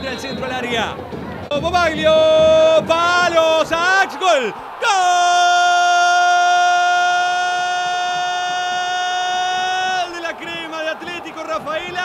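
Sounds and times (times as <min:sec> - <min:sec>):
commentator speaking: 0:00.0 - 0:05.2, 0:10.0 - 0:12.0
crowd noise: 0:00.0 - 0:12.0
commentator's long goal shout: 0:02.1 - 0:12.0.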